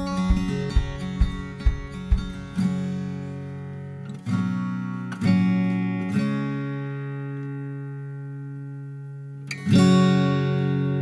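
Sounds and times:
acoustic guitar chord strum: 0:00.0 - 0:11.0
acoustic pop-rock instrumental: 0:00.0 - 0:11.0.

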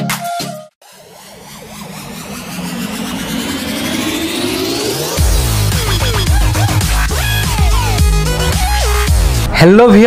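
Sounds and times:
engine-like rumble: 0:00.8 - 0:06.3
rising sound effect: 0:00.8 - 0:09.6.

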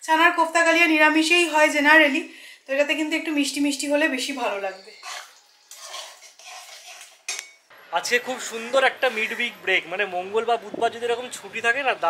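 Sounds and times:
utensils clattering on cookware: 0:05.0 - 0:07.7.

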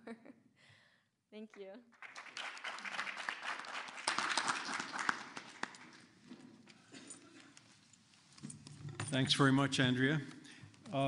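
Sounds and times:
audience applauding: 0:02.0 - 0:06.1.

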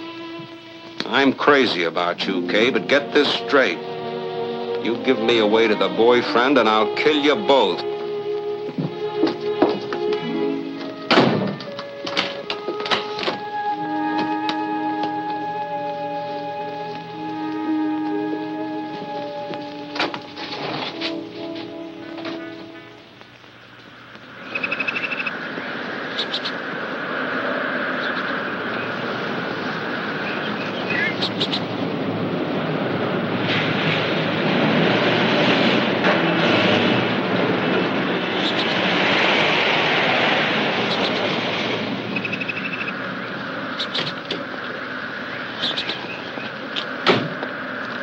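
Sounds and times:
film score music: 0:00.0 - 0:48.0
tyres rushing on dirt road: 0:00.0 - 0:48.0.

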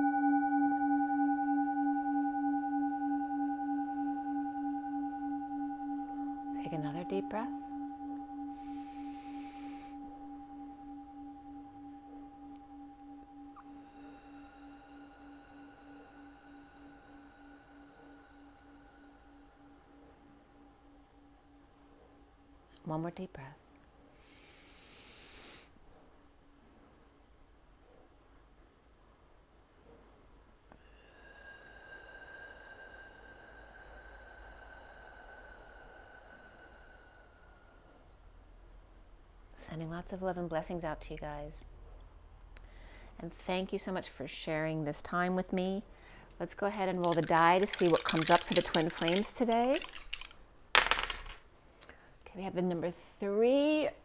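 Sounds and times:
singing bowl ringing: 0:00.0 - 0:22.9.

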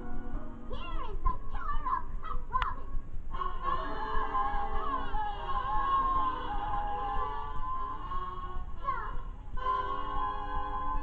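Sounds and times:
cartoon music and voices: 0:00.7 - 0:03.0, 0:08.8 - 0:09.3.

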